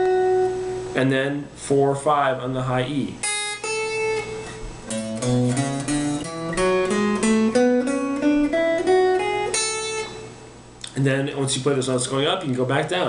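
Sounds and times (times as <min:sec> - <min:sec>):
electric guitar playing scale: 0:00.0 - 0:01.0, 0:03.2 - 0:10.5.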